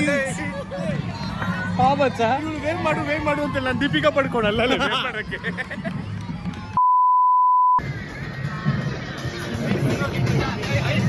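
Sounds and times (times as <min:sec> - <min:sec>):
outdoor crowd noise: 0:00.0 - 0:11.0
censor bleep: 0:06.8 - 0:07.8.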